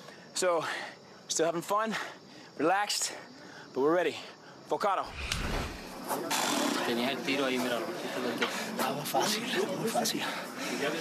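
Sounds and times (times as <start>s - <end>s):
low rumble: 5.1s - 6.0s.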